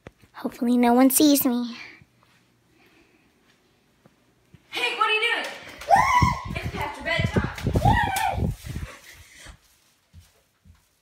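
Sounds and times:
rustling: 0:06.5 - 0:11.0.

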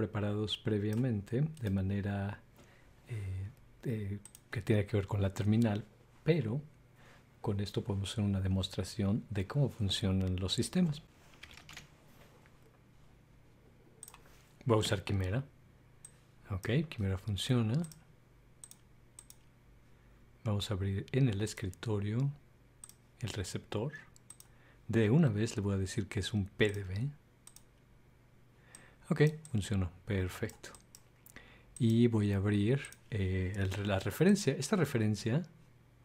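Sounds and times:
computer mouse clicks: 0:04.2 - 0:04.5, 0:14.0 - 0:14.3, 0:17.7 - 0:18.0, 0:18.6 - 0:19.5, 0:21.1 - 0:23.4, 0:24.1 - 0:24.5, 0:26.6 - 0:27.8
typing on computer keyboard: 0:11.4 - 0:11.9.

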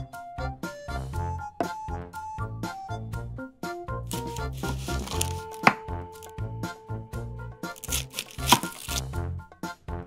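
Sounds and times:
background music: 0:00.0 - 0:10.0
knife slicing onion: 0:04.1 - 0:06.3, 0:07.6 - 0:09.1
knife tapping wooden cutting board: 0:05.6 - 0:05.8.

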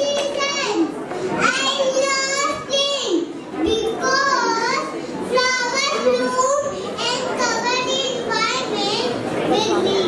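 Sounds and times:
child speaking into a microphone: 0:00.0 - 0:10.0.

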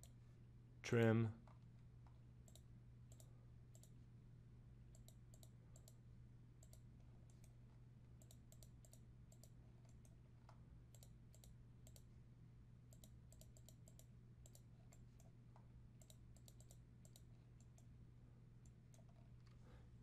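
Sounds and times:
steady low hum: 0:00.0 - 0:20.0
computer mouse clicks: 0:01.5 - 0:04.0, 0:04.9 - 0:06.0, 0:06.6 - 0:07.6, 0:08.2 - 0:12.1, 0:12.9 - 0:17.9, 0:18.6 - 0:19.6.

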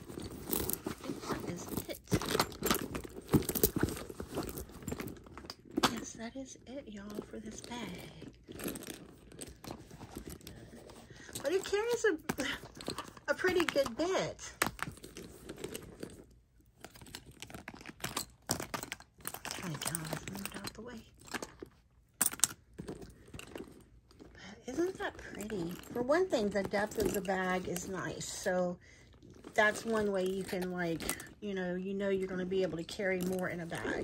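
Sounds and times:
handbag rustling and clicking: 0:00.0 - 0:34.0.

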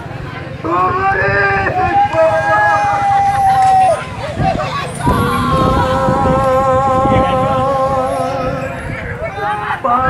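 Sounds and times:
low crowd noise: 0:00.0 - 0:10.0
long steady pitched tone: 0:04.8 - 0:10.0.

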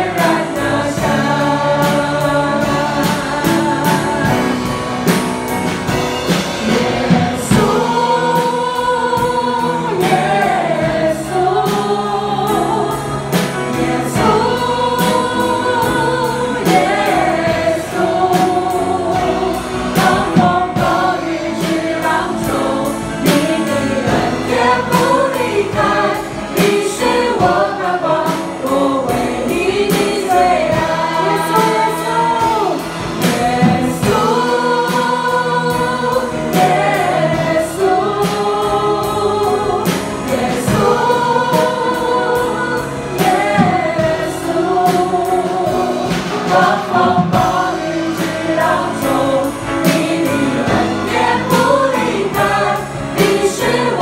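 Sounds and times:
band with steady beat: 0:00.0 - 0:54.0
group singing a praise song: 0:00.0 - 0:54.0.

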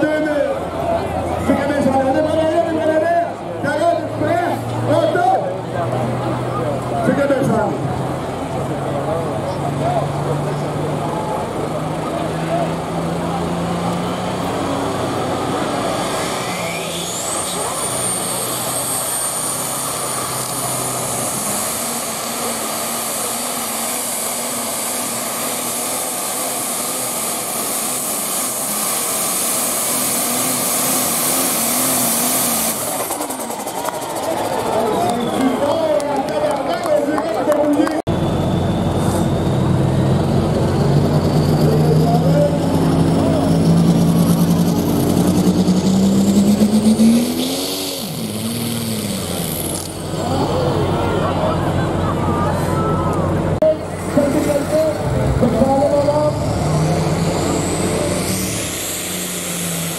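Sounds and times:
tractor engines at full power: 0:00.0 - 0:59.9.

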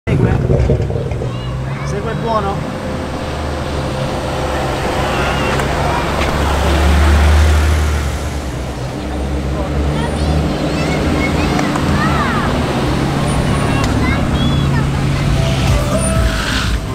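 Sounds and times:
car engine rumble: 0:00.0 - 0:16.9
crowd chatter: 0:00.1 - 0:16.9.

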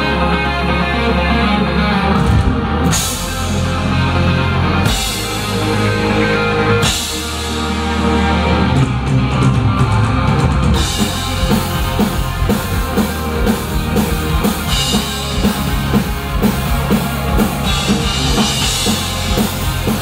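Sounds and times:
bass: 0:00.0 - 0:20.0
distorted guitars: 0:00.0 - 0:20.0
keyboards: 0:00.0 - 0:20.0
drum kit: 0:02.0 - 0:20.0.

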